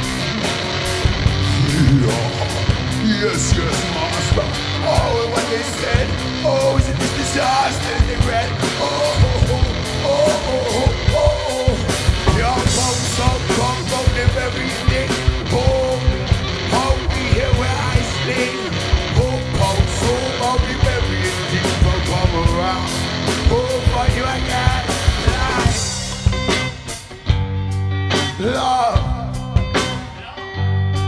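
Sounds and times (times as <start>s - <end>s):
drum kit fast beat: 0.0s - 27.5s
electric guitar: 0.0s - 31.0s
bending pitched lines: 1.0s - 5.7s.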